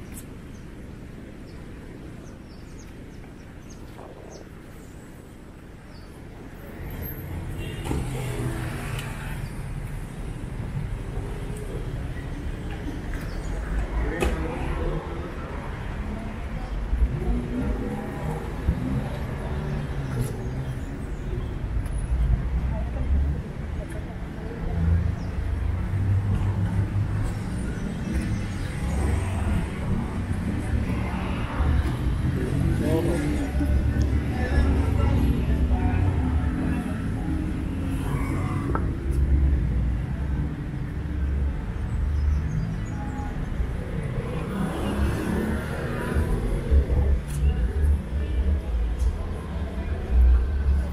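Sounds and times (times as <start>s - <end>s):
road traffic noise: 0.0s - 50.9s.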